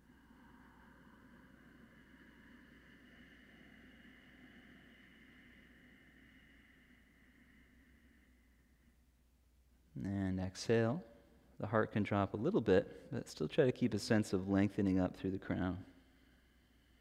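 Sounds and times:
slow breathy inhale: 0.0 - 9.7, 15.8 - 17.0.

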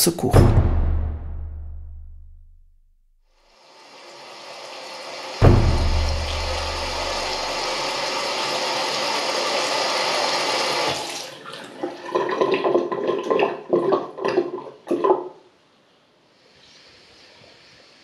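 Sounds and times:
deep thump: 0.3 - 2.8, 5.4 - 7.8
water pouring from a tap: 6.3 - 15.1
water dripping and gurgling: 11.2 - 15.4.

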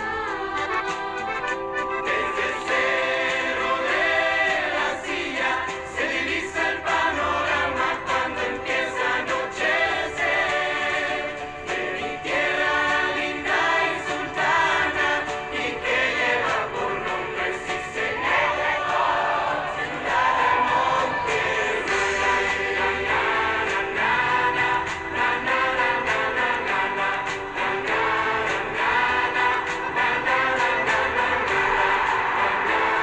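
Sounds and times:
choir singing: 0.0 - 33.0
instrumental backing music: 0.0 - 33.0.

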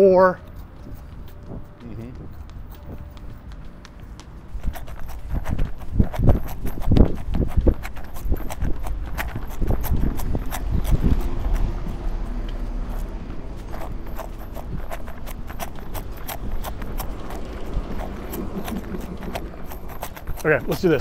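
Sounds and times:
running footsteps on asphalt: 0.0 - 21.0
low rumble: 9.0 - 20.3.

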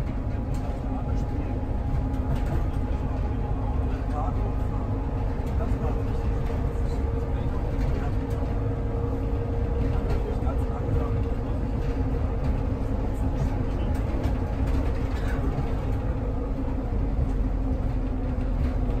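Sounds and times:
car engine and road rumble: 0.0 - 19.0
steady cabin hum: 0.0 - 19.0.

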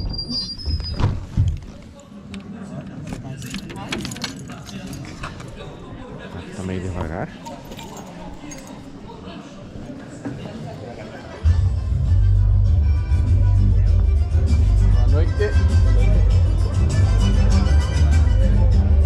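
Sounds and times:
high squeak: 0.0 - 1.3
murmur of voices: 0.0 - 19.0
keys jangling: 3.2 - 5.5, 7.4 - 9.0.

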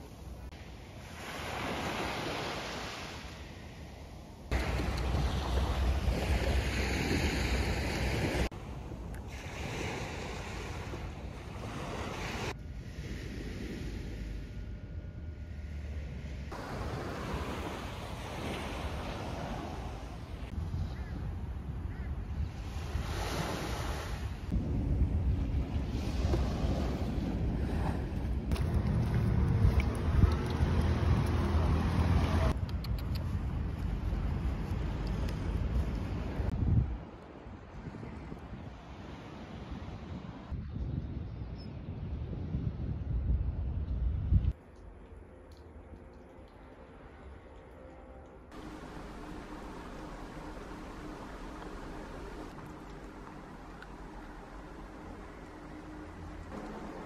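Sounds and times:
waves washing up a beach: 0.0 - 14.3, 16.5 - 20.5, 22.5 - 24.6, 48.6 - 57.0
wind buffeting microphone: 16.4 - 44.6.

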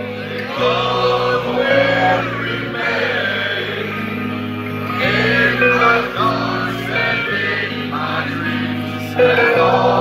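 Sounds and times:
live metal ballad band: 0.0 - 10.0.

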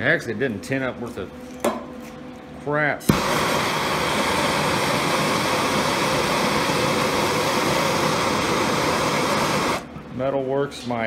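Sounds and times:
gas torch flame hissing: 3.1 - 9.9.

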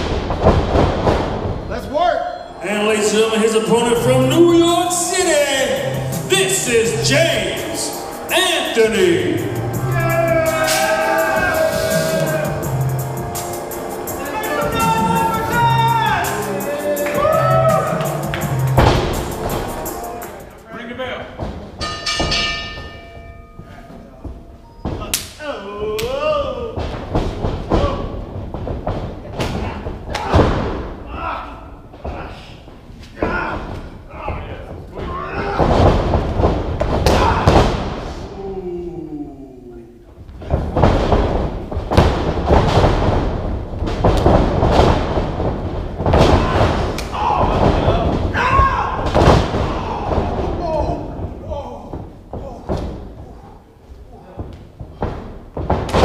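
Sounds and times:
bodies slamming on wrestling ring: 0.0 - 1.7, 26.8 - 31.0, 33.3 - 38.0, 40.5 - 51.4, 54.9 - 56.0
wavering shout: 9.8 - 12.7, 14.2 - 18.2, 46.4 - 49.1
ring bell: 21.8 - 24.7.

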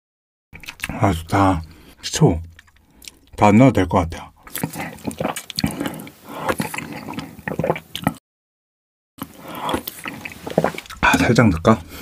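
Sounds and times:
close chewing mouth sounds: 0.6 - 3.4, 4.4 - 8.2, 9.2 - 11.9.

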